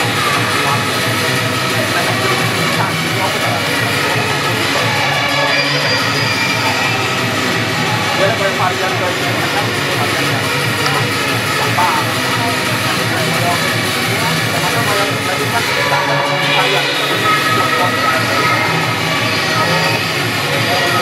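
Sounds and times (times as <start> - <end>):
background music with steady beat: 0.0 - 21.0.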